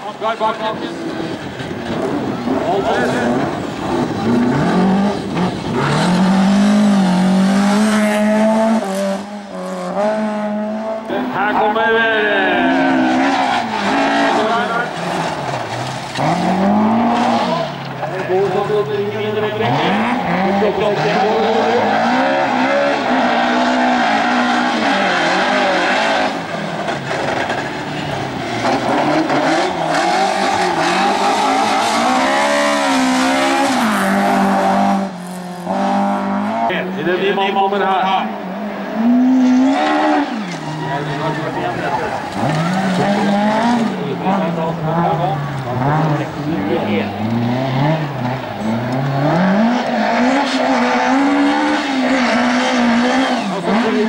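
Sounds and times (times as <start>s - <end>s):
race car engines revving: 0.0s - 54.0s.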